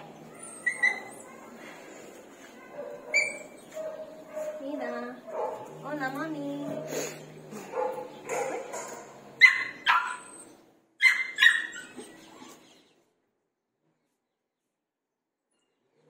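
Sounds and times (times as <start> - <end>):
dog whining: 0.0 - 1.5, 3.1 - 3.6, 9.4 - 12.6
dog barking: 2.5 - 5.7, 6.6 - 7.0, 7.6 - 10.3, 11.0 - 11.9.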